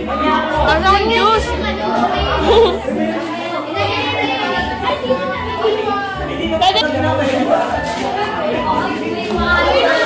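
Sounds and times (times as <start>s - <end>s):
music playing: 0.0s - 10.0s
young people talking: 0.0s - 10.0s.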